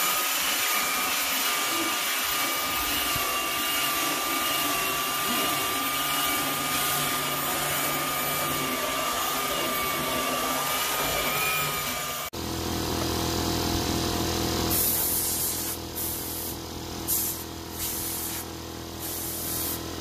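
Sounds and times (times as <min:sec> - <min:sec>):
belt sander on wood: 0:00.0 - 0:12.3, 0:13.4 - 0:20.0.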